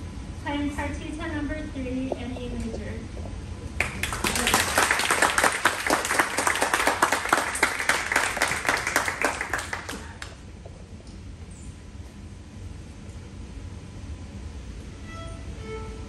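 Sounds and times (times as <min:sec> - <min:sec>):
woman's voice: 0:00.4 - 0:03.2
small audience applauding: 0:03.8 - 0:10.4.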